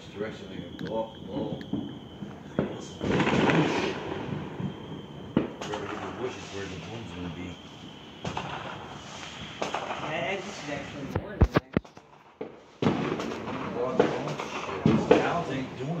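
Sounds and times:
people talking: 0.0s - 1.8s, 2.5s - 3.7s, 5.5s - 7.6s, 9.9s - 12.2s, 13.2s - 16.0s
fireworks cracking and popping: 0.2s - 16.0s.

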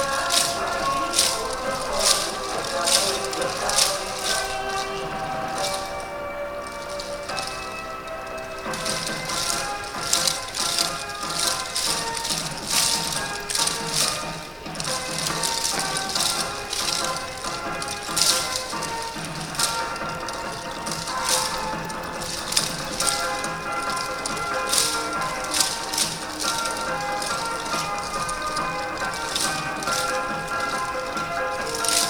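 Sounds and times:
dance music playing: 0.0s - 32.0s
wooden clappers clacking: 0.0s - 32.0s.

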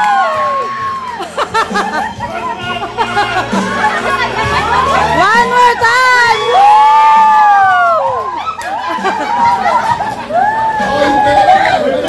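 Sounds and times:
people cheering: 0.0s - 12.0s.

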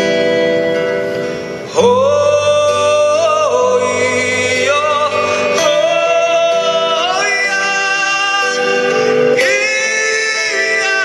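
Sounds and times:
musical accompaniment: 0.0s - 11.0s
man singing into a microphone: 1.7s - 11.0s.

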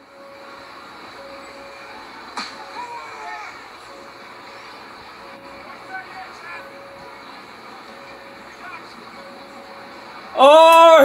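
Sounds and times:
crowd noise from tv: 0.1s - 11.0s.

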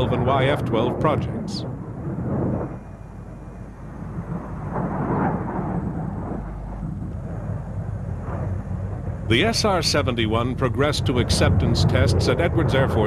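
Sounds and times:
jet engine rush: 0.0s - 13.0s.

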